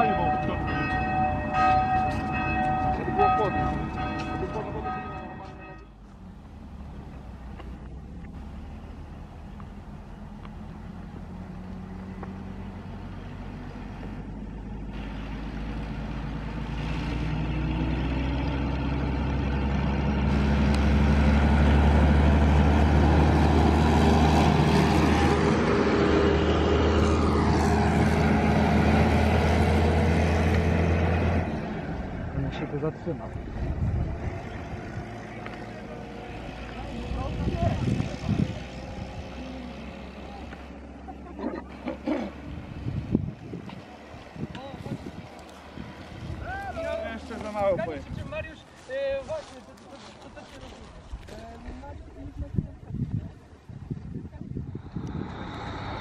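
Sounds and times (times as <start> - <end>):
bus diesel engine passing by: 0.0 - 51.3, 53.5 - 56.0.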